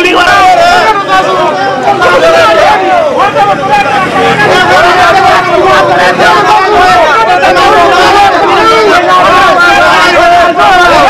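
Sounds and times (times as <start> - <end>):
crowd hubbub: 0.0 - 11.0
people talking loudly: 0.0 - 11.0.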